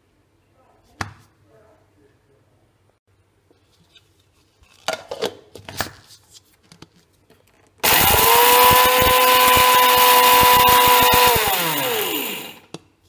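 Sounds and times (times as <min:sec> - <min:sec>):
mixer grinder motor whining: 0:07.8 - 0:12.7.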